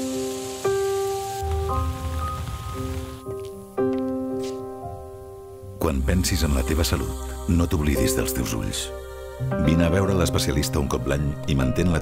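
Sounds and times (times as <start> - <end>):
sprinkler water spray hiss: 0.0 - 3.8
gentle music with held chords: 0.0 - 12.0.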